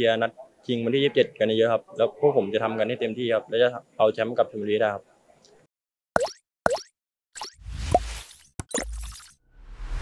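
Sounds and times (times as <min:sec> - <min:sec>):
quick pops falling in pitch: 0:06.2 - 0:07.5.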